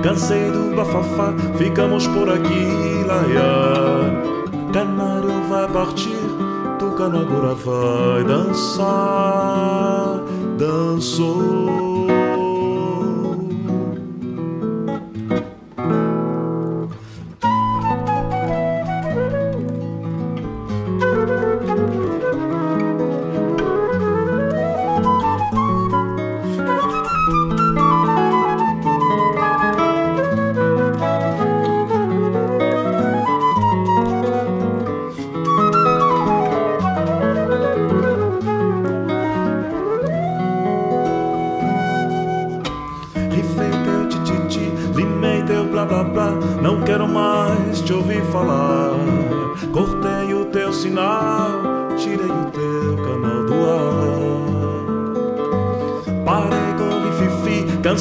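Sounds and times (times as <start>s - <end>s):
classical guitar chords: 0.0s - 58.0s
flute solo: 17.2s - 50.2s.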